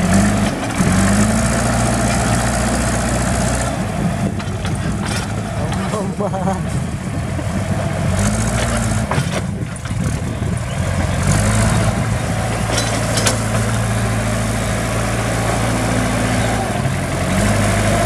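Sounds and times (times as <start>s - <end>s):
diesel engine revving: 0.0s - 18.0s.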